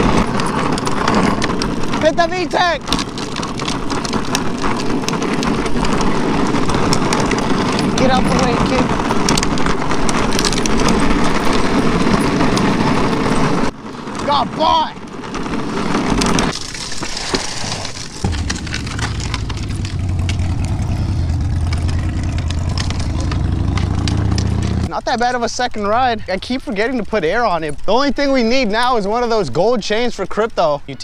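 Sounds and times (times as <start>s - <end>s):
trike wheels rattling on pavement: 0.0s - 31.0s.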